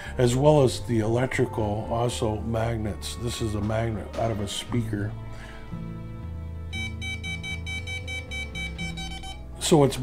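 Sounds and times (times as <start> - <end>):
emf meter beeping rapidly: 6.8 - 9.4.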